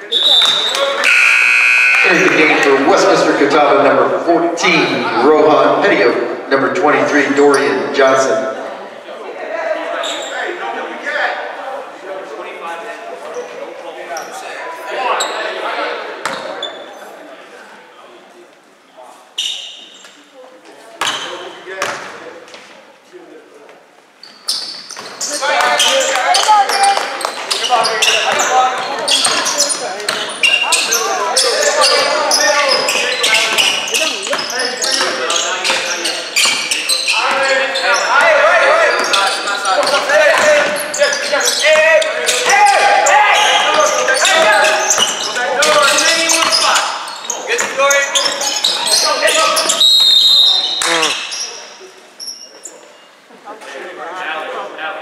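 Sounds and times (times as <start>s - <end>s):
loud shouting voices: 36.8s - 51.2s.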